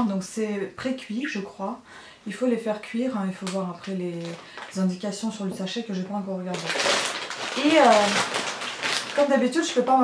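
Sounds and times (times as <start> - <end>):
plastic bags crinkling: 3.4 - 5.7, 6.5 - 10.0.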